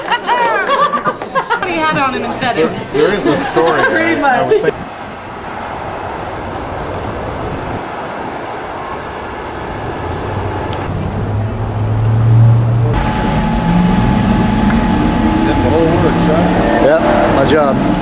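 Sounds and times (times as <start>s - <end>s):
traffic noise: 0.0s - 18.0s
vehicle engine hum: 4.7s - 18.0s.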